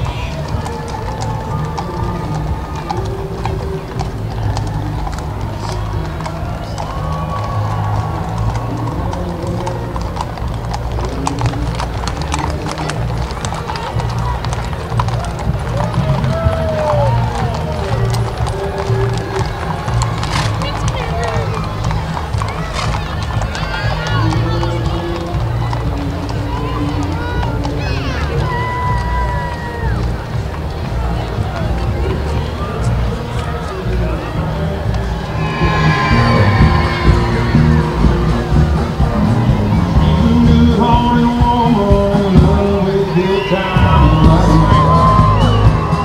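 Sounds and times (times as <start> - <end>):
music playing: 0.0 - 28.6, 30.2 - 46.0
horse hooves clip-clopping on brick: 0.0 - 35.4, 38.5 - 46.0.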